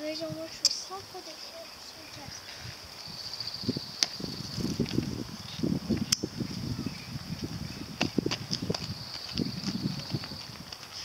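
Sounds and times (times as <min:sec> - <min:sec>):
high insect-like trill: 0:02.9 - 0:08.0
scuffs and knocks on asphalt: 0:08.0 - 0:11.0.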